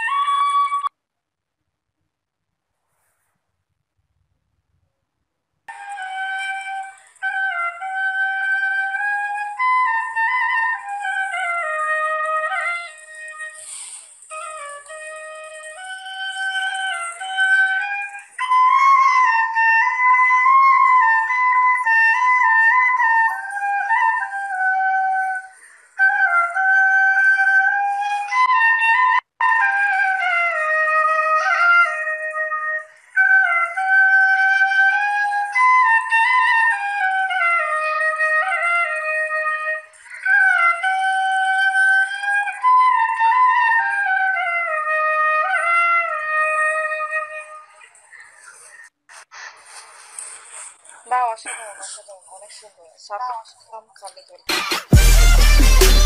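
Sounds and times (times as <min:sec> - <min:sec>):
bamboo flute melody: 0:00.0 - 0:01.0, 0:05.7 - 0:49.2, 0:54.5 - 0:56.0.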